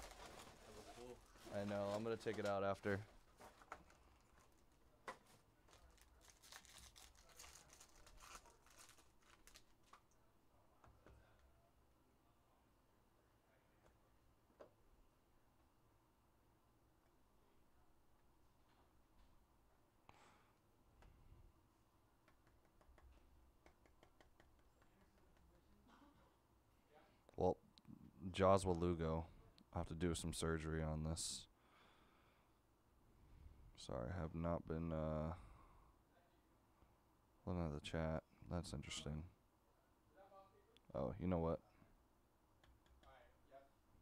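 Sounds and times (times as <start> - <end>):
foil wrapper crinkling and tearing: 0.0 - 2.6, 5.6 - 10.0.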